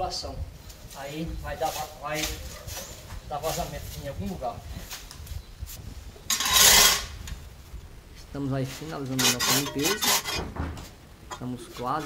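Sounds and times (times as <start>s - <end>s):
hoe scraping concrete floor: 6.3s - 7.2s, 8.8s - 10.6s.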